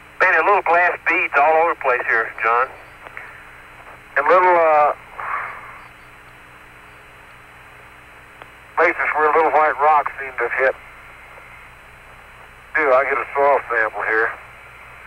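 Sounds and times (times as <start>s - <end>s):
low hum: 0.0s - 15.0s
radio hiss: 0.0s - 15.0s
man's voice over radio: 0.2s - 3.2s, 4.2s - 5.5s, 8.8s - 10.8s, 12.7s - 14.5s.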